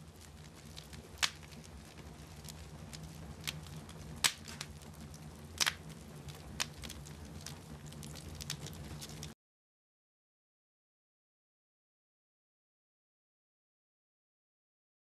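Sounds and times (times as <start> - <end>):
low steady hum: 0.0 - 9.4
wood fire crackling and popping: 0.0 - 9.4.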